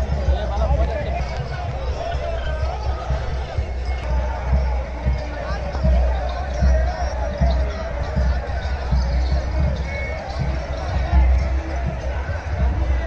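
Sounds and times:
crowd voices: 0.0 - 13.0.

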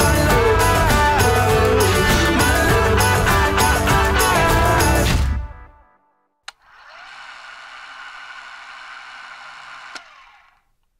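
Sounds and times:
film projector click: 6.5 - 10.9
film projector whirring: 6.5 - 10.9.

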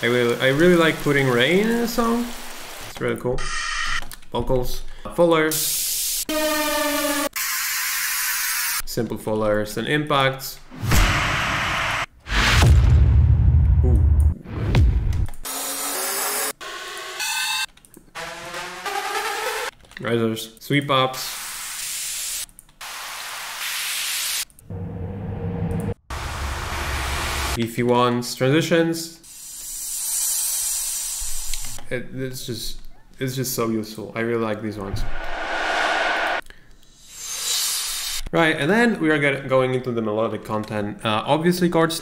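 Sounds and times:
synth riser sweeps: 34.9 - 36.5.

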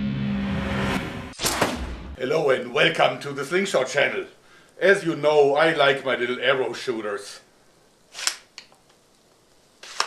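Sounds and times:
slingshot crossbow shot snap: 1.4 - 1.9.

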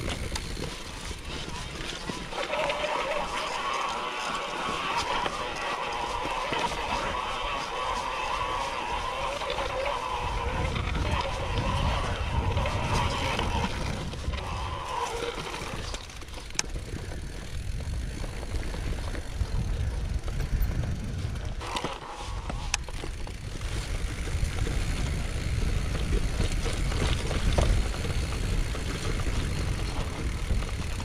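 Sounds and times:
bike tyre noise and rattling: 0.0 - 31.0
low rumbling of wind: 0.0 - 31.0.

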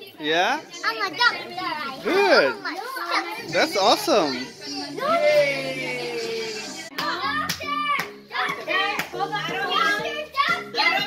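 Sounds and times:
children talking excitedly: 0.0 - 11.0.

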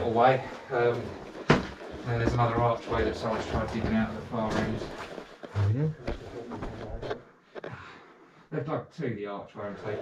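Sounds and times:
footsteps crunching on chalk rubble: 0.9 - 5.5.

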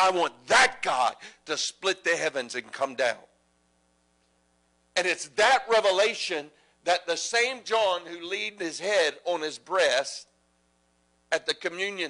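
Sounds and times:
man speaking: 0.0 - 3.3, 5.0 - 10.3, 11.3 - 12.0
faint electrical hum: 0.0 - 12.0.

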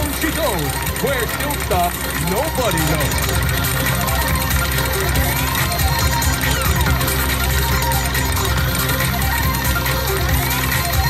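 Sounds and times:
electronic slot machine music: 0.0 - 11.0.

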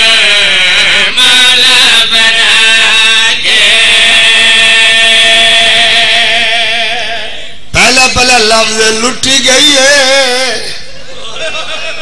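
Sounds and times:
man chanting into microphone: 0.0 - 10.9.

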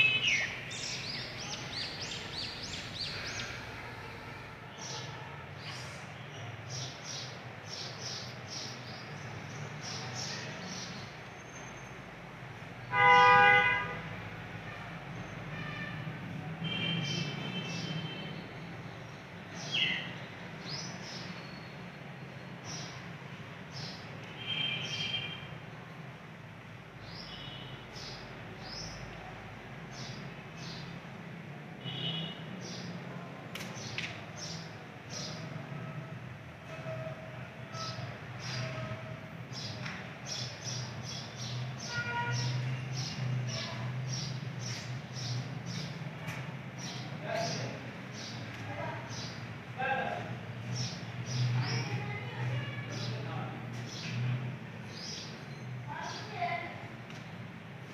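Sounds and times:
vehicle horn honk: 0.0 - 0.8, 12.9 - 14.1, 16.6 - 18.4, 31.8 - 32.4, 41.9 - 42.6
small birds chirping: 0.0 - 5.0.

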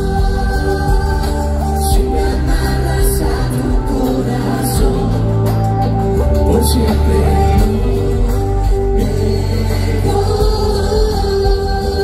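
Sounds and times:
band with drums and bass: 0.0 - 12.0
voices singing in harmony: 0.0 - 12.0.

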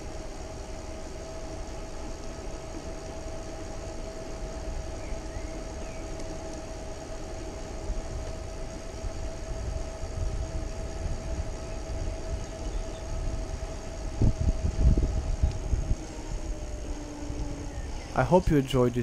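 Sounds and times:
electric hub motor whining: 0.0 - 19.0
wind and tyres on asphalt: 0.0 - 19.0.

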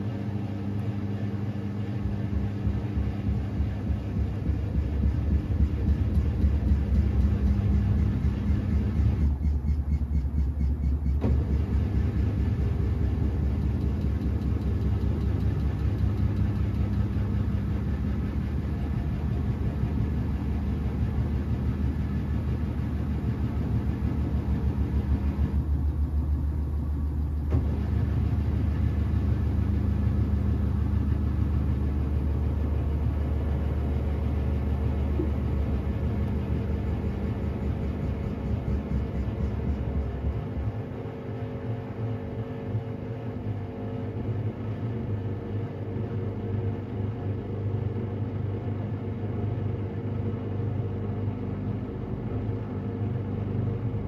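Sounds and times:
washing machine motor humming: 0.0 - 54.0.

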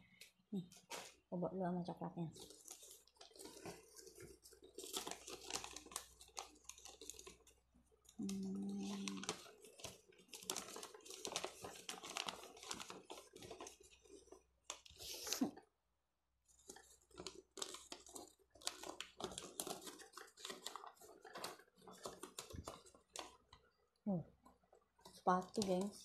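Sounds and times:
wrapping paper tearing and crinkling: 0.7 - 1.3, 2.3 - 15.6, 16.5 - 23.5, 25.1 - 26.0.

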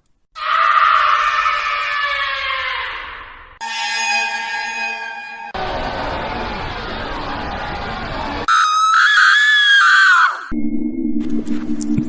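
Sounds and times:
high sustained tones sinking in pitch: 10.5 - 12.0.

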